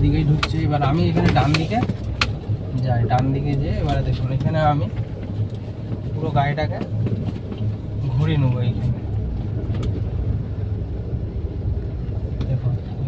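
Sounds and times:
car engine low hum: 0.0 - 13.0.

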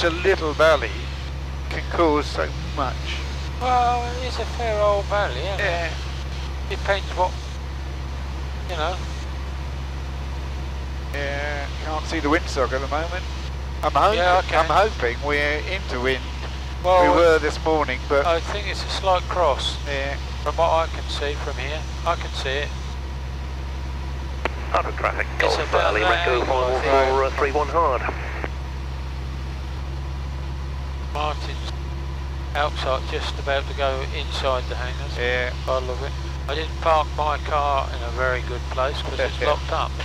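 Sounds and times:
man talking: 0.0 - 6.0, 6.7 - 7.4, 8.7 - 9.1, 11.2 - 13.2, 13.8 - 22.7, 24.5 - 28.5, 31.1 - 31.7, 32.5 - 40.0
aircraft piston engine droning: 0.0 - 40.0.

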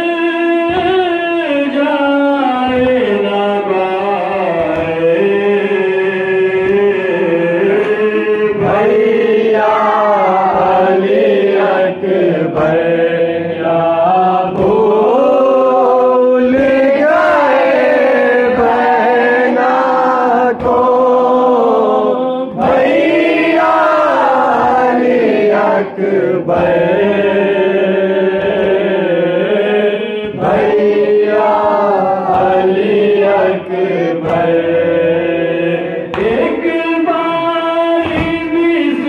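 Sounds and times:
men chanting a mourning elegy: 2.7 - 39.0.

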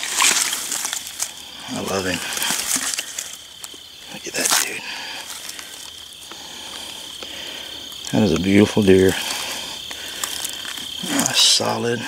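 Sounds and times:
faint rustles: 0.0 - 11.7
insects trilling: 0.0 - 12.0.

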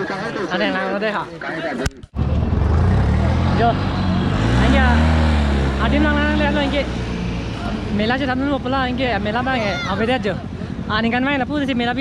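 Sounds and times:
loud low engine drone: 2.2 - 8.0.

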